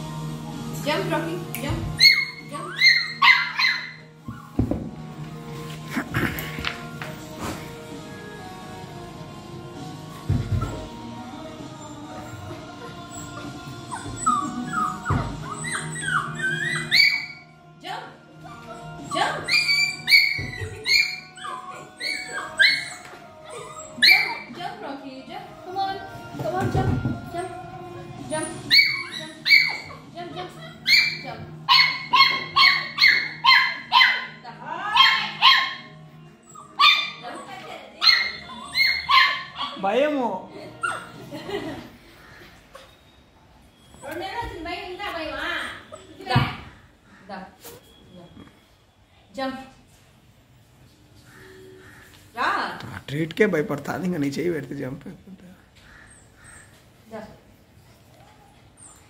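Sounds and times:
puppy whimpering: 2.0s - 4.6s, 10.4s - 17.5s, 18.3s - 24.8s, 26.6s - 39.9s, 40.5s - 41.6s, 42.2s - 48.8s, 55.5s - 57.3s, 58.0s - 59.0s.

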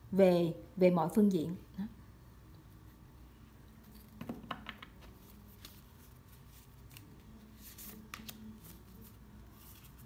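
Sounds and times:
cards sliding and brushing: 5.1s - 10.0s.

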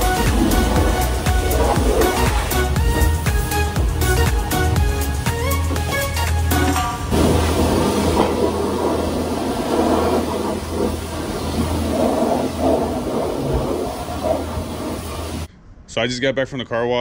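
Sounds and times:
pressure washer spraying water: 0.0s - 15.5s
low hum: 0.0s - 15.9s.

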